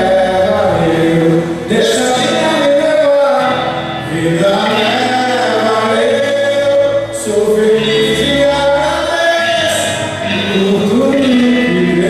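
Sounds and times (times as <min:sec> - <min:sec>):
live band playing: 0:00.0 - 0:12.0
person singing long notes: 0:00.0 - 0:12.0.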